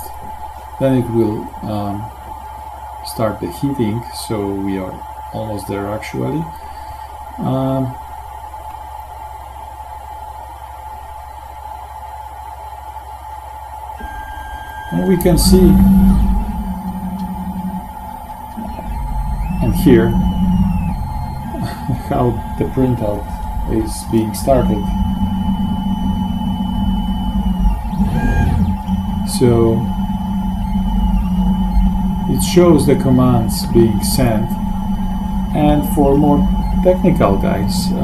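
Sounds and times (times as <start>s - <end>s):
faint steady tone: 0.0s - 38.0s
printer humming: 0.0s - 38.0s
stepper motor whine: 0.0s - 38.0s
print head moving: 14.0s - 38.0s.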